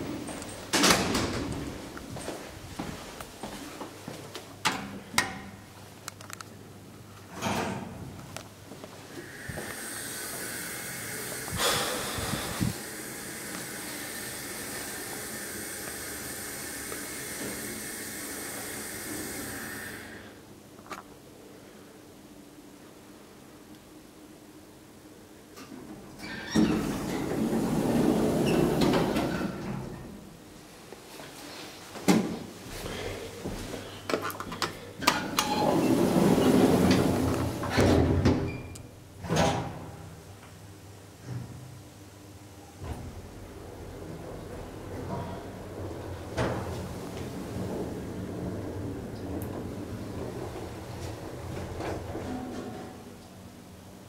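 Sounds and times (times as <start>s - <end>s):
hydraulic elevator whine: 9.1s - 20.3s
elevator doors sliding shut: 26.2s - 30.3s, 35.0s - 40.0s, 42.8s - 53.4s.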